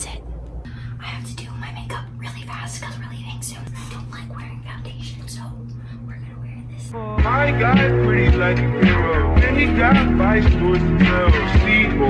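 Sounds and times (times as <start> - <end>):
soft whispering: 0.0 - 7.0
low electrical hum: 0.0 - 7.2.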